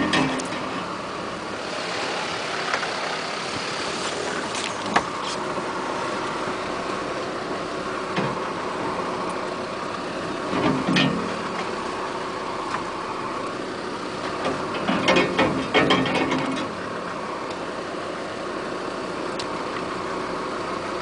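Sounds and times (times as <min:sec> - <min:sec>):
vehicle engine running at low speed: 0:00.0 - 0:21.0.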